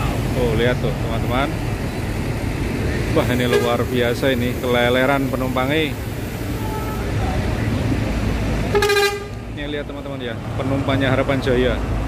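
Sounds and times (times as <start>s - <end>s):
low engine rumble: 0.0s - 12.0s
bus horn blast: 3.4s - 3.9s, 6.5s - 7.2s, 8.7s - 9.4s.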